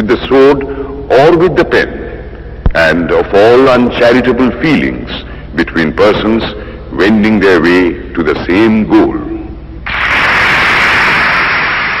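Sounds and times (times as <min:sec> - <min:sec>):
speech: 0:00.0 - 0:02.0, 0:02.8 - 0:09.5
loud static hiss: 0:00.0 - 0:12.0.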